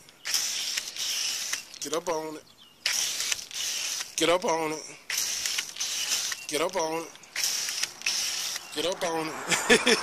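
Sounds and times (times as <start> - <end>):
foam gun spraying hiss: 0.3 - 1.6, 2.9 - 4.2, 5.1 - 6.4, 7.4 - 8.7.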